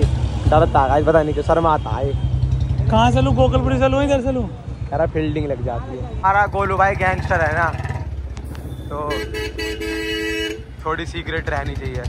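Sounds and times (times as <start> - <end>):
vehicle horn blast: 8.7 - 10.8.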